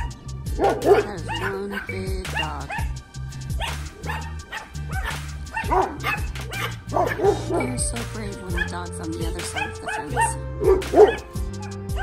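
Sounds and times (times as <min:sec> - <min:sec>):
background music with bass line: 0:00.0 - 0:12.0
dogs barking: 0:00.0 - 0:12.0.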